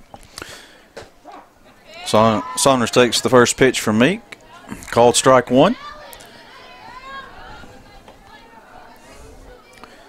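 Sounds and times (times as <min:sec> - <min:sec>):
faint distant voices: 0:00.6 - 0:10.0.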